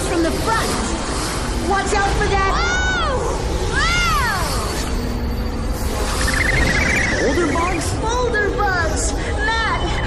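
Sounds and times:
high warbling squeal: 0:02.5 - 0:08.1.

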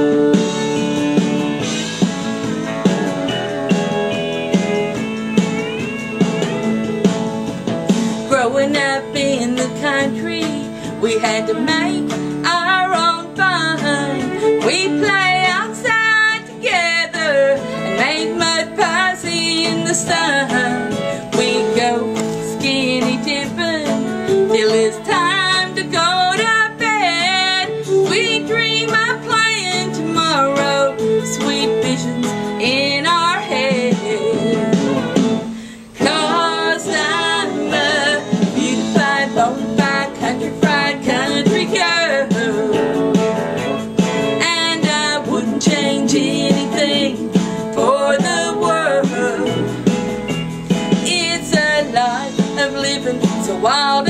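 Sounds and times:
woman singing country song: 0:00.0 - 0:01.2, 0:07.9 - 0:49.9, 0:50.9 - 0:54.0
acoustic guitar: 0:00.0 - 0:54.0.

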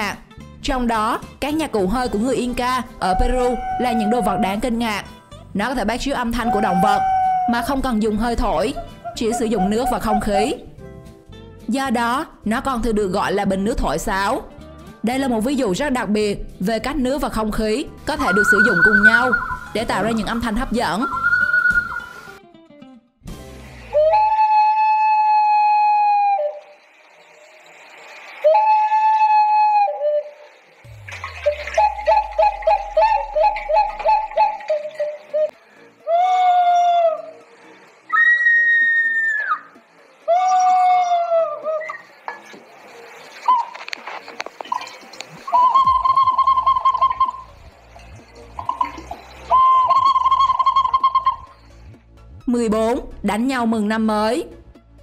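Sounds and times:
clay whistling vessels: 0:03.0 - 0:04.9, 0:06.3 - 0:10.7, 0:18.1 - 0:22.4, 0:23.9 - 0:51.9.

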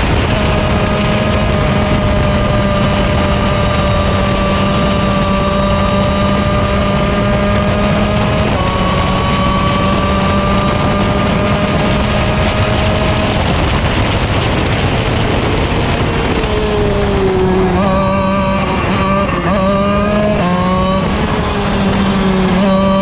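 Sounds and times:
kart engine running hard: 0:00.0 - 0:23.0
wind rush over microphone: 0:00.0 - 0:23.0.

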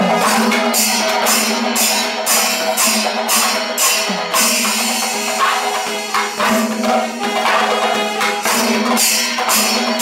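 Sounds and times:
hand cymbals clashing: 0:00.0 - 0:10.0
temple percussion ensemble: 0:00.0 - 0:10.0.

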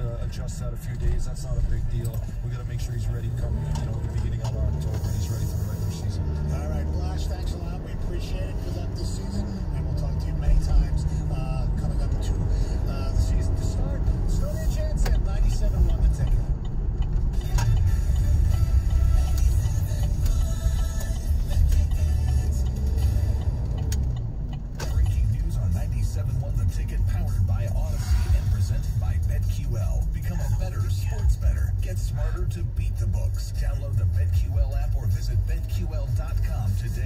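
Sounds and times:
car radio speech and music: 0:00.0 - 0:37.0
road and engine rumble: 0:00.0 - 0:37.0.

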